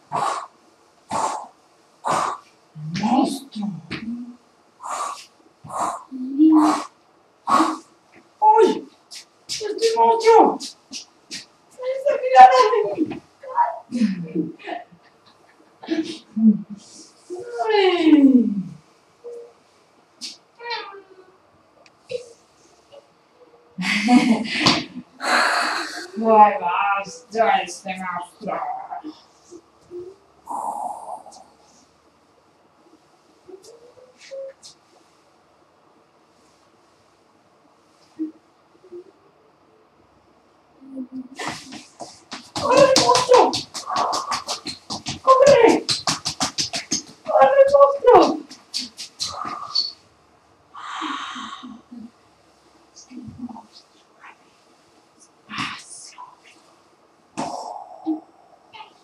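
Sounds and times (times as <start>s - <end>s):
breathy hiss: 0.0s - 2.5s, 4.8s - 8.0s, 25.2s - 26.3s, 30.4s - 32.0s, 50.7s - 53.2s
person making monster noises: 0.1s - 0.5s, 2.1s - 3.0s, 7.5s - 7.8s.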